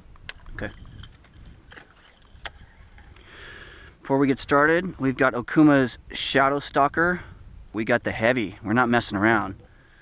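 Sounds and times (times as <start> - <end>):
handling noise in metal boat: 0.3 - 3.2.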